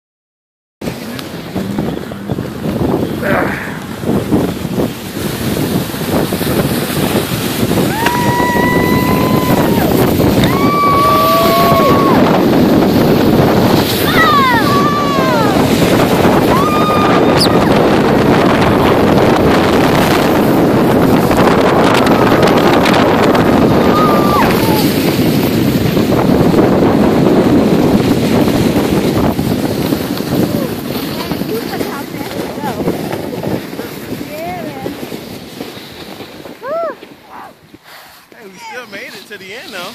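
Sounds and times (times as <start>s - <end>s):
snow tubes rushing over snow: 0.8s - 39.9s
wind on microphone: 0.8s - 39.9s
riders squealing and shouting: 7.9s - 12.3s, 14.0s - 15.6s, 16.4s - 17.8s, 23.8s - 25.0s.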